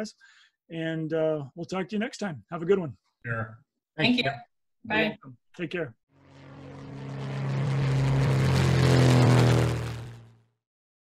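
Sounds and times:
propeller airplane engine: 6.1 - 10.6.

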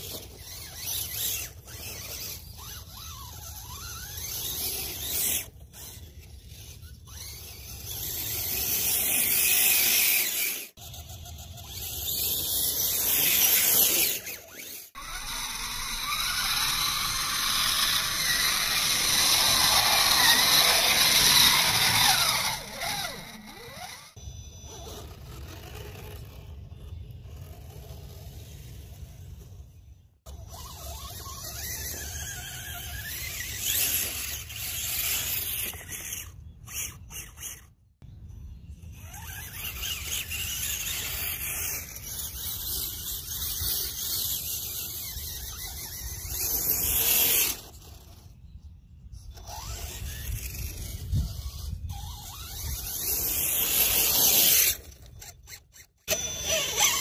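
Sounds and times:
toy truck motor whining: 0.0 - 57.0.

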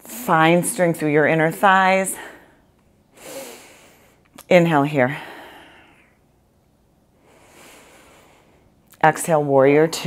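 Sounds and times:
woman breathing: 1.4 - 4.3, 5.1 - 6.3, 7.1 - 8.8.

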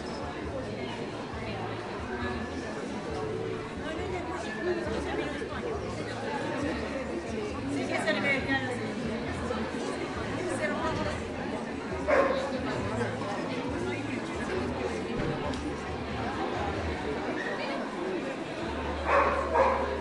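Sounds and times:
people chattering: 0.0 - 20.0
dog barking: 12.1 - 12.5, 19.1 - 19.9.

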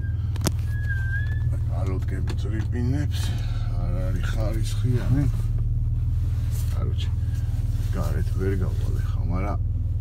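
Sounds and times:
car engine idling: 0.0 - 10.0
man speaking: 1.6 - 5.5, 6.7 - 9.6.

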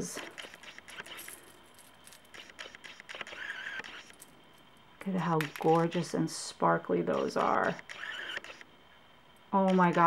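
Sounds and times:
small metal beads clinking: 1.0 - 2.3.

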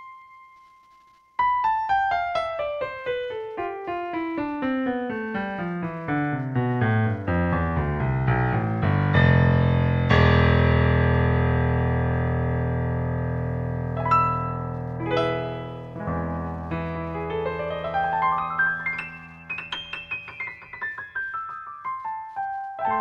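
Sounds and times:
piano notes falling: 0.0 - 23.0
loud low piano chords: 1.7 - 23.0.

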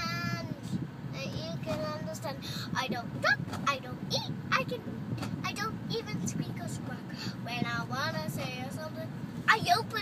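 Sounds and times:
car cabin road rumble: 0.0 - 10.0
girl singing: 0.0 - 10.0.

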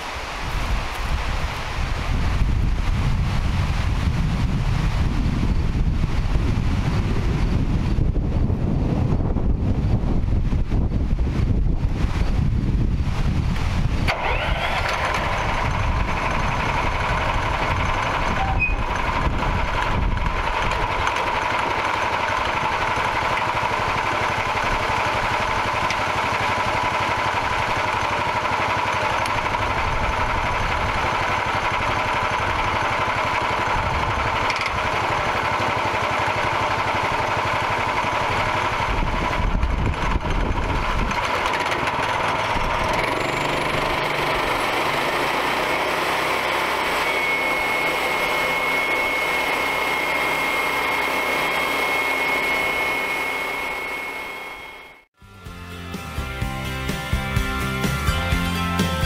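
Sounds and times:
steady high whine: 0.0 - 58.8
small gasoline engine running: 14.0 - 59.0
saw blade cutting log: 41.2 - 54.3.

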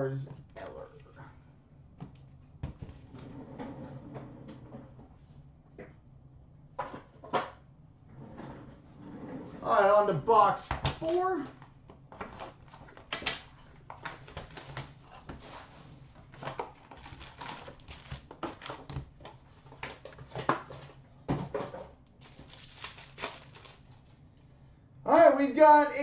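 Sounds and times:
wrappers crinkling and rustling: 12.3 - 20.4, 22.0 - 24.1.

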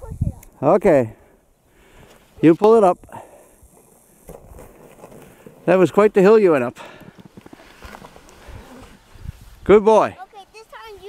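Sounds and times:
crunching and scuffing in snow: 7.1 - 9.6.

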